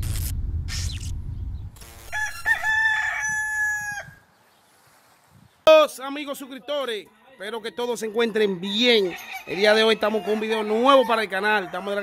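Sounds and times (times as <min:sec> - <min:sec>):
loud low rumble: 0:00.0 - 0:01.8
rooster crowing: 0:02.1 - 0:04.2, 0:07.1 - 0:12.0.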